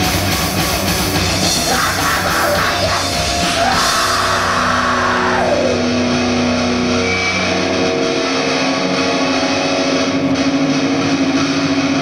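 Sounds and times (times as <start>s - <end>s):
distorted electric guitars droning: 0.0s - 12.0s.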